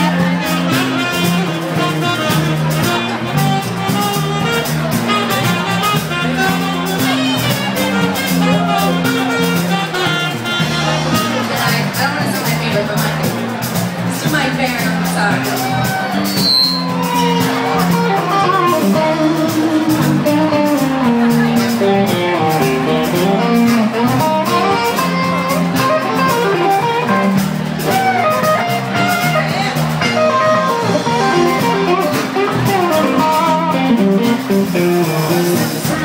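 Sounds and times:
bass guitar: 0:00.0 - 0:36.0
drums with cymbals: 0:00.0 - 0:36.0
electric guitar melody: 0:00.0 - 0:36.0.

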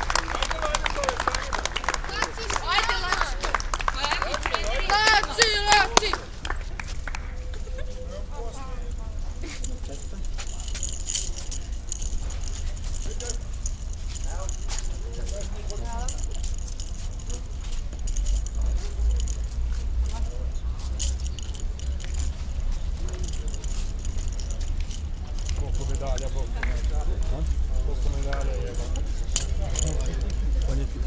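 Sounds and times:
low steady rumble: 0:00.0 - 0:31.0
metal medals clinking: 0:08.6 - 0:31.0.

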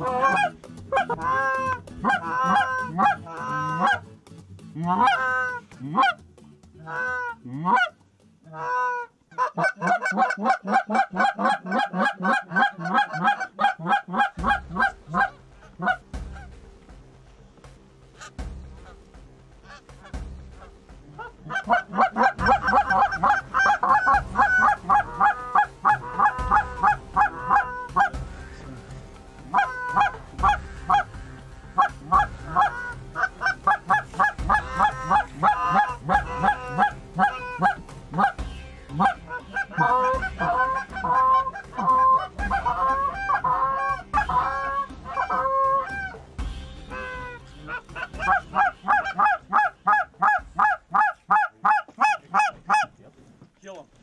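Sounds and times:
geese honking and clucking: 0:00.0 - 0:53.2.

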